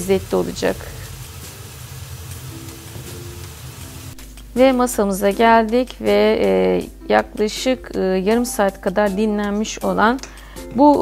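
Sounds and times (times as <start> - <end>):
meat sizzling in a frying pan: 0.0 - 4.2.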